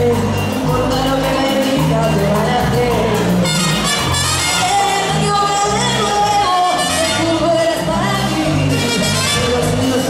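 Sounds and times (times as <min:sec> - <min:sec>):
electric bass: 0:00.0 - 0:10.0
keyboards: 0:00.0 - 0:10.0
percussion: 0:00.0 - 0:10.0
woman singing: 0:00.0 - 0:10.0.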